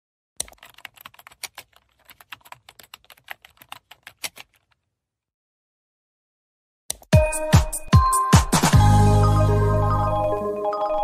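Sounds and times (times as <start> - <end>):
computer keyboard typing: 0.4 - 4.8.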